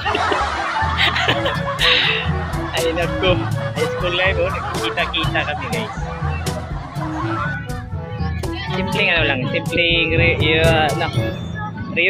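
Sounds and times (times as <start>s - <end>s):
people laughing: 0.0s - 11.3s
background music: 0.0s - 12.0s.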